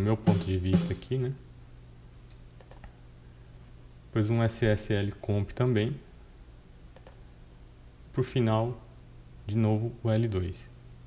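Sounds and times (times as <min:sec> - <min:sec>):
faint steady low hum: 0:00.0 - 0:11.0
computer mouse click: 0:02.3 - 0:03.0, 0:06.9 - 0:07.2.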